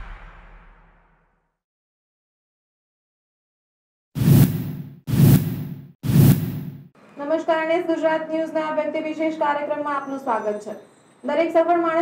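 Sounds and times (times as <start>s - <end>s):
whoosh with low boom: 0.0s - 1.3s.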